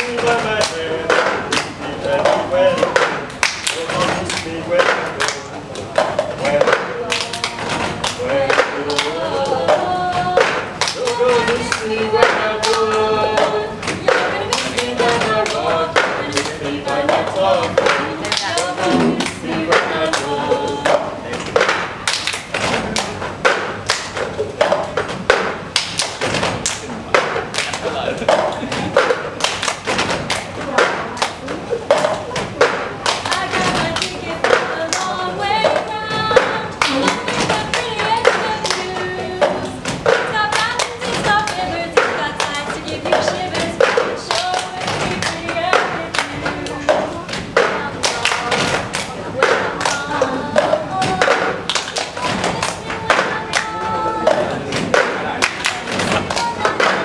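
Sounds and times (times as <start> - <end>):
plastic cups hitting a table: 0.0 - 57.0.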